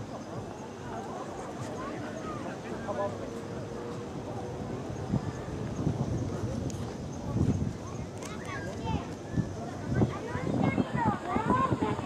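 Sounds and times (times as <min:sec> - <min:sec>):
people talking: 0:00.0 - 0:12.0
wind buffeting microphone: 0:03.4 - 0:12.0.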